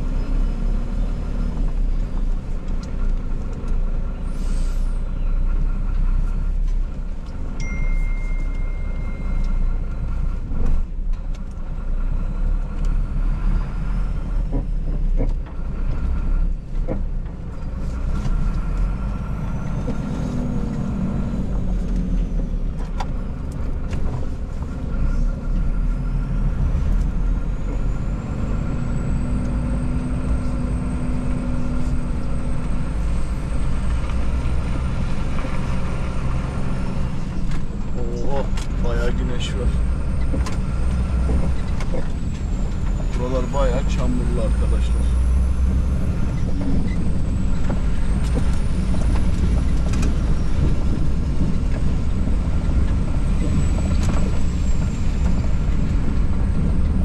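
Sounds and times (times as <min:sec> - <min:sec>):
truck diesel engine rumbling: 0:00.0 - 0:57.0.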